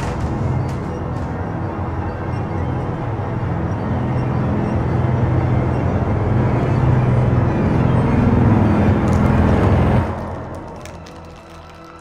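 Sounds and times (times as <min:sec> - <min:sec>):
eerie musical drone: 0:00.0 - 0:12.0.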